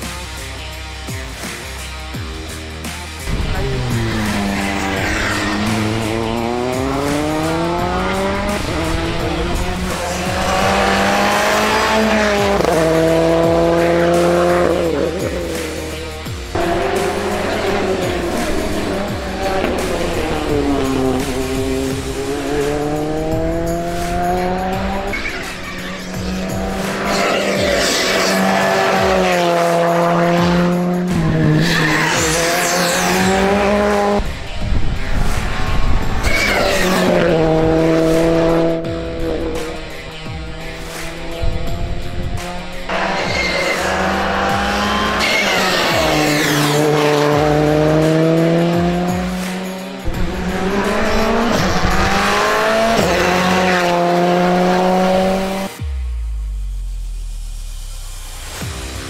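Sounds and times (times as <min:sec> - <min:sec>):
background music: 0:00.0 - 0:59.0
rally car engine accelerating: 0:00.0 - 0:59.0.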